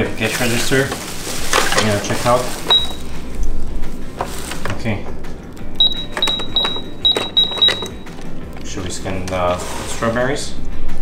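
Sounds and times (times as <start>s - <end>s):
toy cash register beeps: 2.7s - 3.0s, 5.8s - 8.2s.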